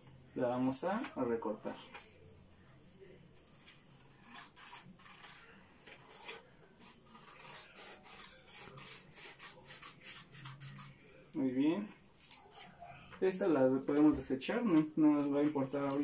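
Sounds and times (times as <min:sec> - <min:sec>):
scissors snipping paper: 0:03.4 - 0:11.0, 0:14.7 - 0:16.0.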